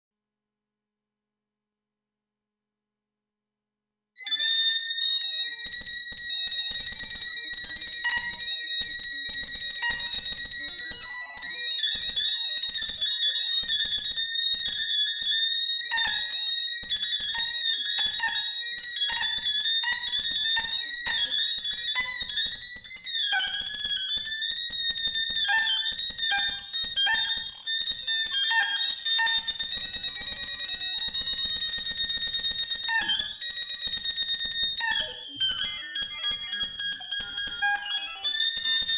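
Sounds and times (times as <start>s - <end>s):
piercing sustained electronic tone: 4.2s - 38.9s.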